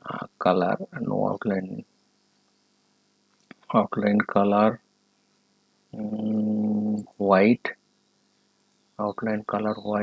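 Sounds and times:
man saying uhh: 6.0 - 7.7.

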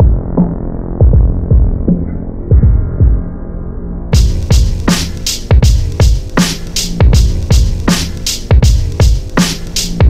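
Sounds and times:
filtered hip-hop beat: 0.0 - 10.0.

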